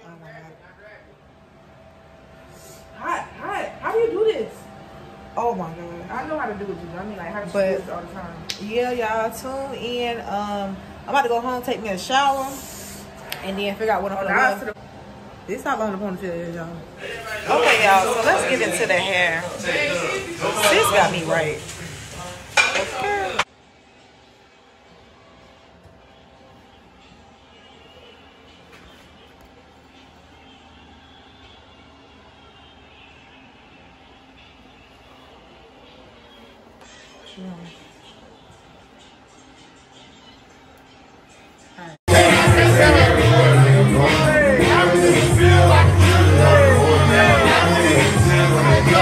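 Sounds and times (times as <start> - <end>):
woman's voice: 5.4 - 14.8, 37.2 - 38.0.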